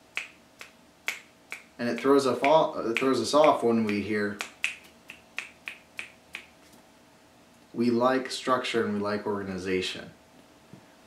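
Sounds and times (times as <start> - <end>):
finger snapping: 0.1 - 6.5.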